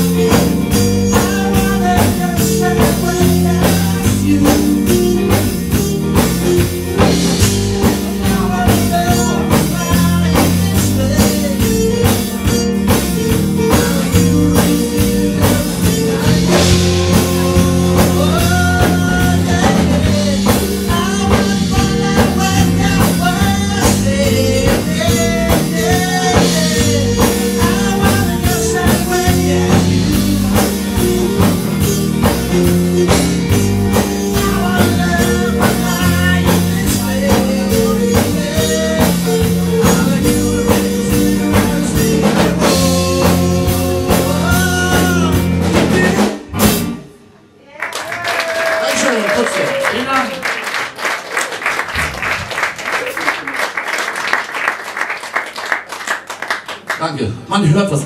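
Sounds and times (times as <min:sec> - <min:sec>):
man singing: 0:00.0 - 0:46.7
live band playing: 0:00.0 - 0:47.6, 0:48.2 - 0:56.9
audience applauding: 0:47.7 - 0:57.4.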